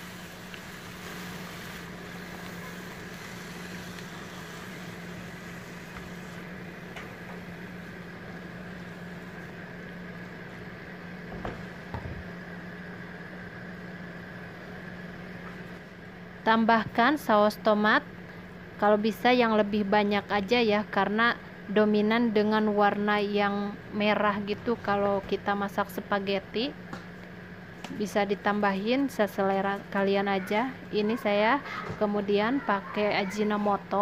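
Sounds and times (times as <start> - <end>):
food sizzling in a pan: 0.0 - 7.8.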